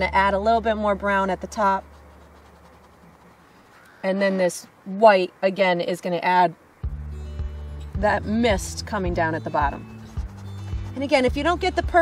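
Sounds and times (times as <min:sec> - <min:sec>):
brush scratching on canvas: 0:00.1 - 0:04.0, 0:09.0 - 0:12.0.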